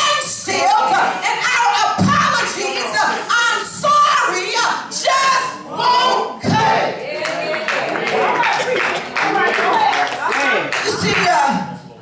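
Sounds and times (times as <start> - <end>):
congregation hand clapping: 7.1 - 11.6
person speaking loudly: 8.1 - 11.8.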